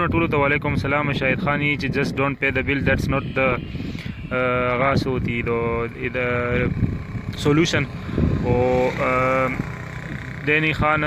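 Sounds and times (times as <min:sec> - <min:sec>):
man holding drawn-out vowels: 0:02.5 - 0:10.4
motorcycle engine passing: 0:03.2 - 0:11.0.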